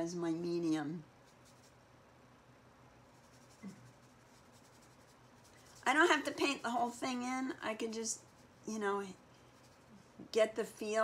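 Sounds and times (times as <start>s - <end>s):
woman speaking: 0.0s - 1.1s, 5.8s - 9.2s, 10.2s - 11.0s
paintbrush strokes on paper: 1.2s - 1.9s, 3.0s - 10.4s.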